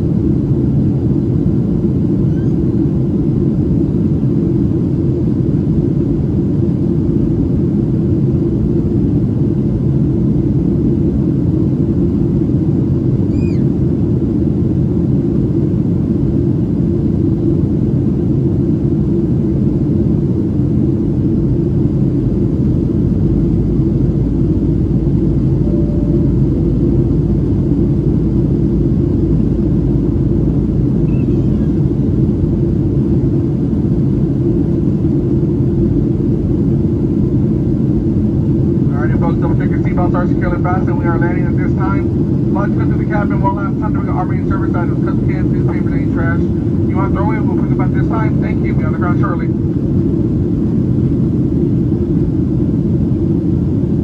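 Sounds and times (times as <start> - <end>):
airplane cabin rumble: 0.0 - 54.0.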